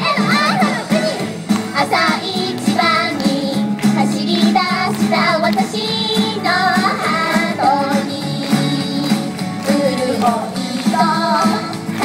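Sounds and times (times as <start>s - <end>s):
women singing pop song: 0.0s - 11.9s
recorded backing music: 0.0s - 12.0s.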